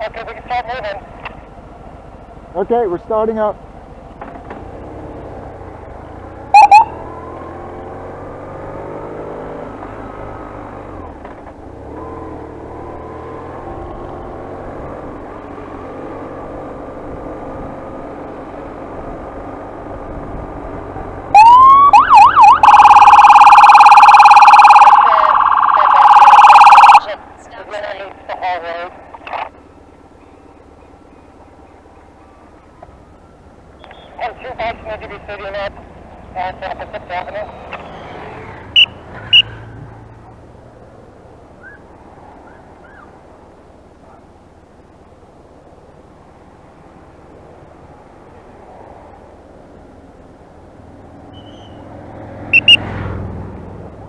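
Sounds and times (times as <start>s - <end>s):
motorcycle engine accelerating: 4.1s - 23.4s
short siren chirp: 6.5s - 7.1s, 21.4s - 27.0s, 52.5s - 52.8s
loud electronic police siren: 6.5s - 7.6s, 21.3s - 27.2s, 52.5s - 52.8s.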